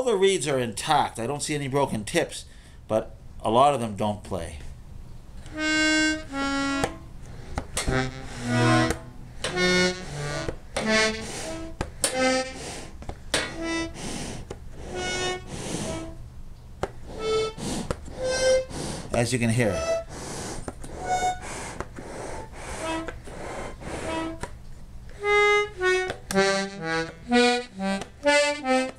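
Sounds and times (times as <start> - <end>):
accordion clicks: 5.4 - 16.1, 16.8 - 28.9
accordion reed notes: 5.4 - 16.2, 17.1 - 24.5, 25.1 - 28.9.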